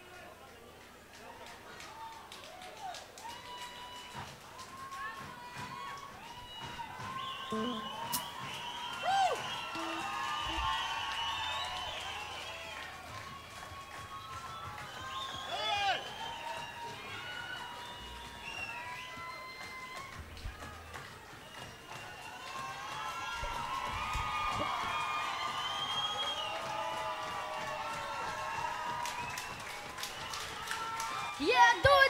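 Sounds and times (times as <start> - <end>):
crowd voices and shouts: 0.0 - 32.0.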